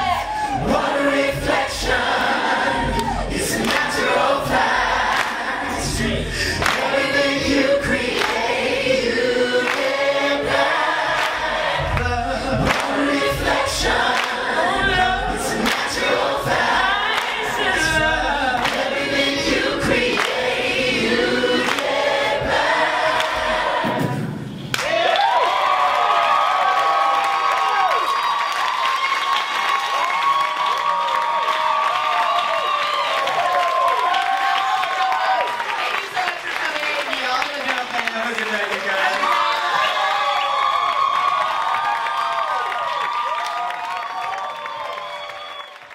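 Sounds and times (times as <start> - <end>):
layered a cappella voices: 0.0 - 24.7
repeating low vocal beat: 0.0 - 24.7.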